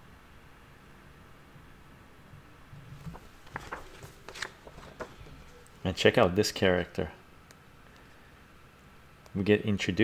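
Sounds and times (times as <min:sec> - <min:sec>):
paper pages rustling: 0:02.9 - 0:05.8
man speaking: 0:05.8 - 0:07.2, 0:09.4 - 0:10.0.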